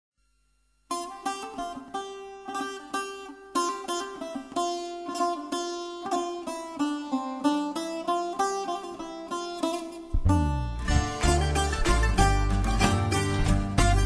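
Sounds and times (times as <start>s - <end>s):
plucked string instrument melody: 0.9s - 14.0s.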